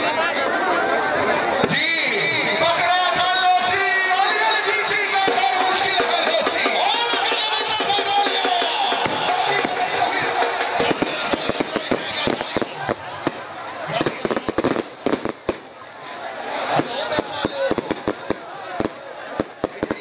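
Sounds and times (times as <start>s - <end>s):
crowd shouting: 0.0s - 20.0s.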